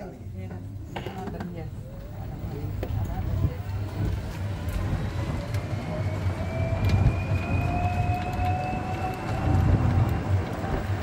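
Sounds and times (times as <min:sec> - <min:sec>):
electric motor whine rising: 0:04.5 - 0:10.4.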